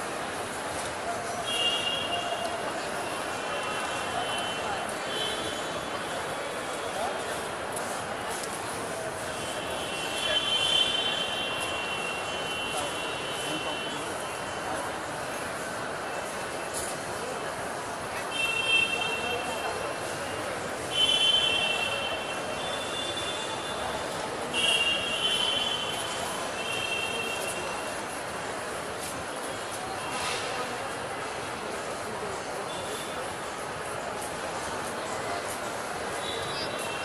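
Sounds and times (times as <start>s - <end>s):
background hubbub: 0.0s - 37.0s
crowd chatter in a hall: 0.0s - 37.0s.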